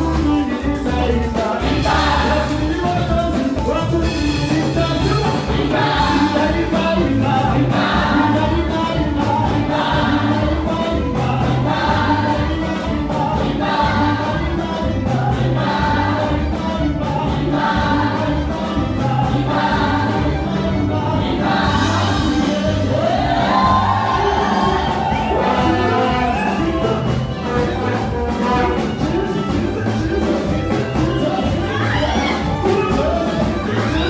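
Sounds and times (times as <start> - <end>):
band with steady beat: 0.0 - 34.0
gospel choir singing: 0.0 - 34.0.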